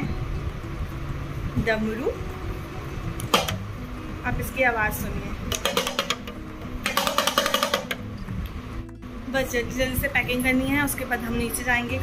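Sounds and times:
hand drum rattling roll: 5.5 - 8.0.

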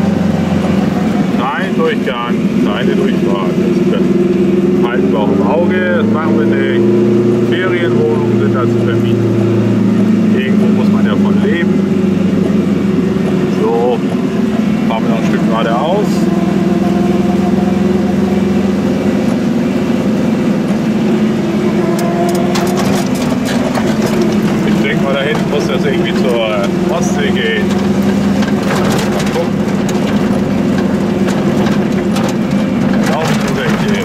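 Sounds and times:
small car engine droning: 0.0 - 34.0.

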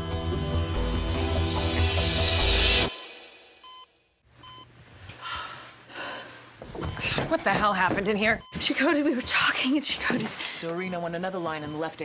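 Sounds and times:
heart monitor beeps: 3.6 - 4.7, 6.7 - 9.5, 10.8 - 12.0.

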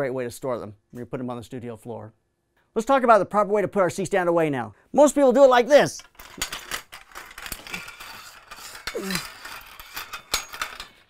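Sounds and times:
metal stand clanking: 6.2 - 11.0.

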